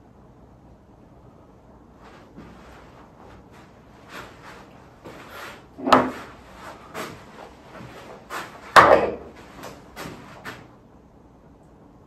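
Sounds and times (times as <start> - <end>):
marker click-knock on whiteboard: 5.8 - 6.2, 8.8 - 9.3.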